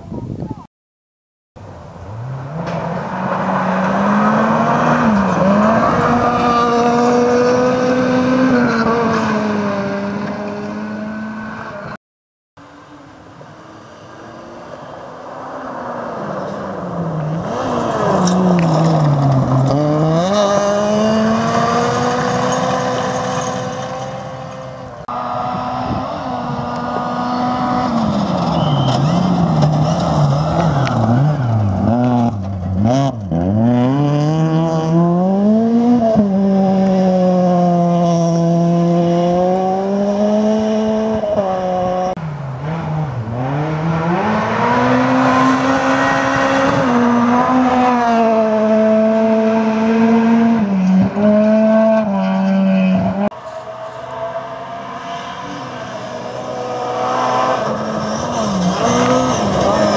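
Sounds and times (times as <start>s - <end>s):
rally car engines revving: 1.8s - 12.0s, 13.5s - 59.9s.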